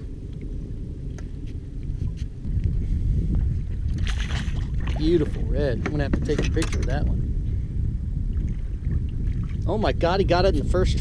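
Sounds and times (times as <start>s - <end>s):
wind rumble on microphone: 0.0s - 11.0s
water against boat hull: 3.4s - 7.2s.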